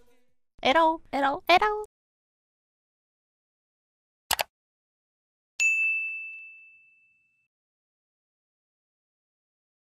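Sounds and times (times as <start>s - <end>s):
bright bell ding: 5.6s - 7.5s.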